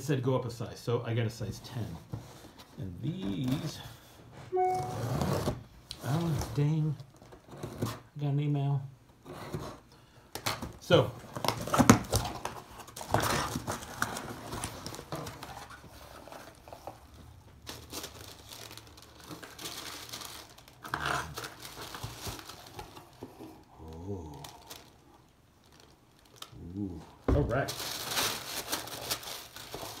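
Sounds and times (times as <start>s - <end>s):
shoebox being opened: 10.4s - 17.0s
paper wrapping crinkling and tearing: 11.3s - 30.0s.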